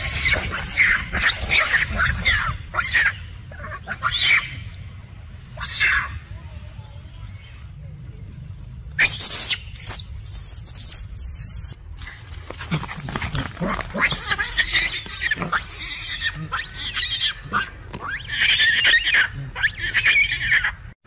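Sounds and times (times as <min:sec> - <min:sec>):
monkeys screaming: 0:00.0 - 0:04.8, 0:05.6 - 0:06.2, 0:09.0 - 0:11.8, 0:12.8 - 0:21.0
monkeys squealing calls: 0:00.0 - 0:04.8, 0:05.6 - 0:06.2, 0:09.0 - 0:11.8, 0:13.6 - 0:21.0.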